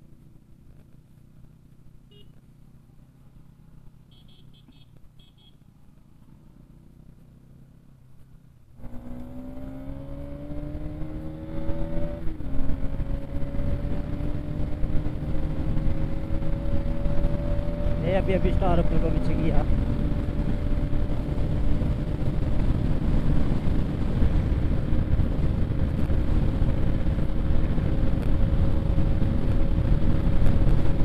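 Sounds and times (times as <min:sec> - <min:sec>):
motorcycle engine accelerating: 0:00.0 - 0:31.0
wind and road noise: 0:00.0 - 0:31.0.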